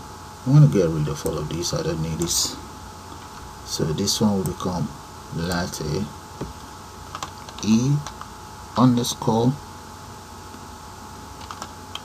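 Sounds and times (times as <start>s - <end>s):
faint electrical hum: 0.0s - 12.0s
keyboard typing: 7.1s - 8.3s, 11.4s - 12.0s.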